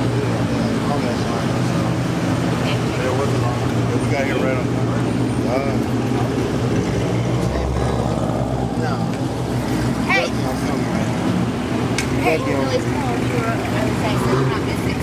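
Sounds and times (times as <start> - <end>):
crowd voices: 0.0 - 15.0
muscle car engines rumbling: 0.0 - 15.0.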